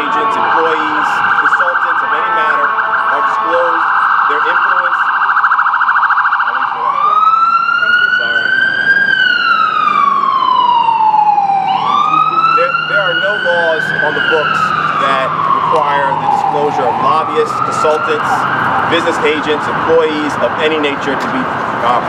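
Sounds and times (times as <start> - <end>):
emergency siren yelp and wail: 0.0 - 22.0.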